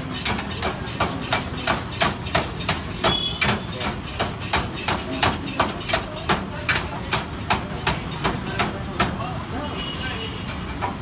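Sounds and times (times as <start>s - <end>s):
knife chopping on steel tray: 0.2s - 9.2s.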